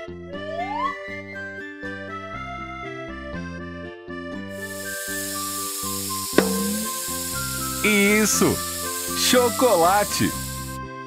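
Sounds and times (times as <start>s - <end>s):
light background music: 3.6s - 10.8s
machine hissing: 4.6s - 10.8s.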